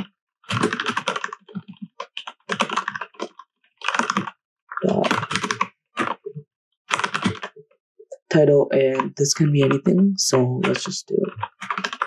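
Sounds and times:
typing on computer keyboard: 0:00.0 - 0:07.6, 0:10.6 - 0:12.0.

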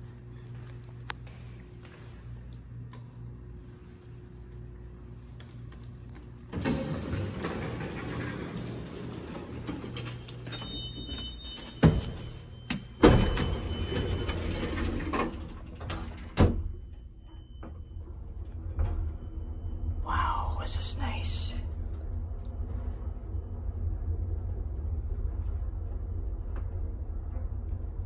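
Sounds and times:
elevator machinery hum: 0:00.0 - 0:28.0
elevator doors sliding: 0:06.4 - 0:20.0
elevator doors thud shut: 0:06.5 - 0:16.8.

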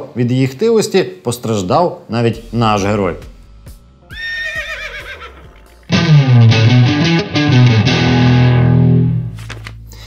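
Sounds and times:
horse whinny: 0:04.1 - 0:05.6
distorted electric guitar music: 0:05.3 - 0:09.4.

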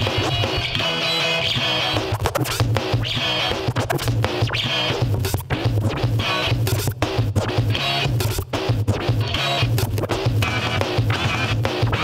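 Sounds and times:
record scratching: 0:00.0 - 0:12.0.

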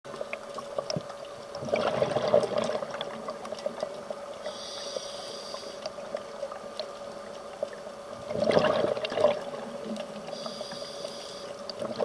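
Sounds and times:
steady hum: 0:00.1 - 0:12.0
exhaled bubbles gushing: 0:00.9 - 0:04.0, 0:08.2 - 0:10.1
diver breathing through regulator: 0:04.5 - 0:05.9, 0:10.3 - 0:11.6
faint clicks: 0:09.8 - 0:12.0.

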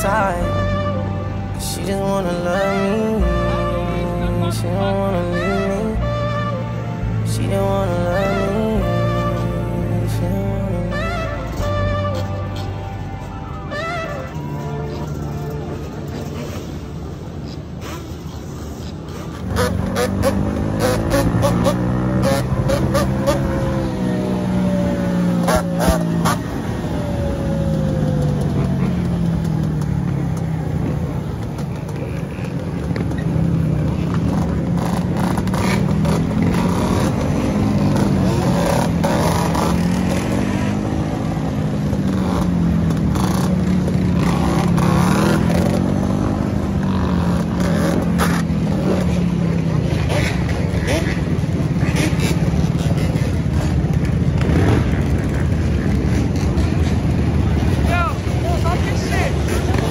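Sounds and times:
other quads and dirt bikes: 0:00.0 - 0:59.9
quad engine revving: 0:19.0 - 0:59.9.

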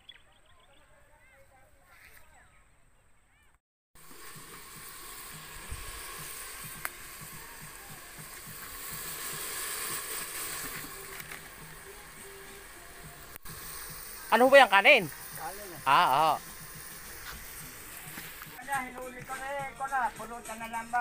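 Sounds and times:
meat sizzling in a pot: 0:04.0 - 0:18.6.

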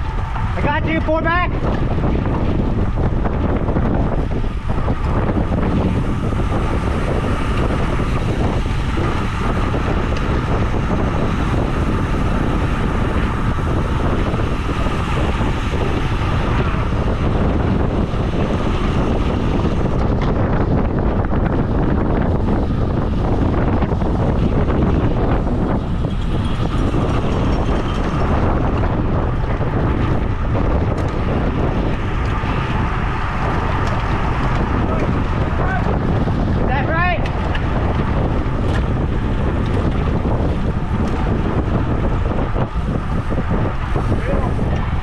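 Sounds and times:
wind rushing over microphone: 0:00.0 - 0:45.0.

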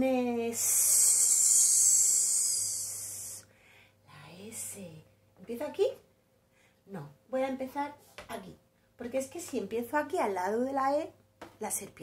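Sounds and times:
woman hissing: 0:00.6 - 0:03.5.

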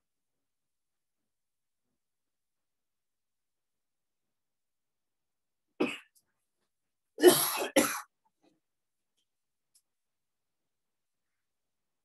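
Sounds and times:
person coughing: 0:05.8 - 0:06.2, 0:07.2 - 0:08.1.

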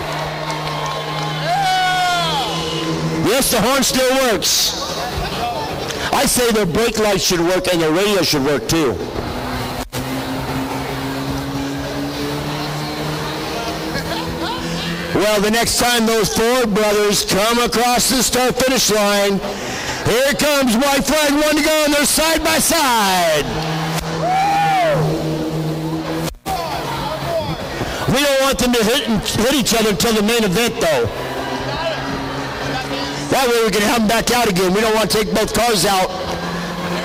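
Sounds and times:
race car engines droning: 0:00.0 - 0:37.0.

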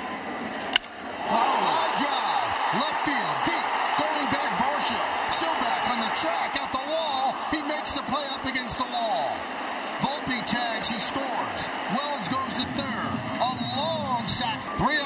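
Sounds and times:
crowd cheering: 0:00.0 - 0:15.0
fans shouting: 0:01.1 - 0:15.0.

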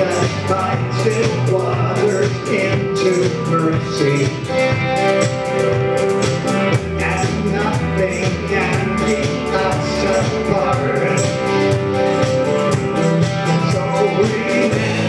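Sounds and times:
bass guitar: 0:00.0 - 0:15.0
drum kit beat: 0:00.0 - 0:15.0
electric guitar: 0:00.0 - 0:15.0
people singing: 0:07.0 - 0:11.5, 0:13.5 - 0:15.0.

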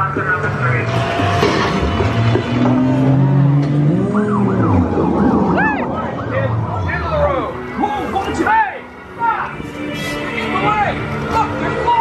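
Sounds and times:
police sirens wailing: 0:00.0 - 0:09.6
sustained low music: 0:00.0 - 0:12.0.

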